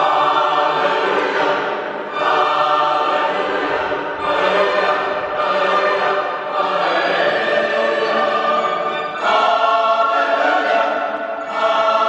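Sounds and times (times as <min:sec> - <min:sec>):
choir singing in parts: 0:00.0 - 0:12.0.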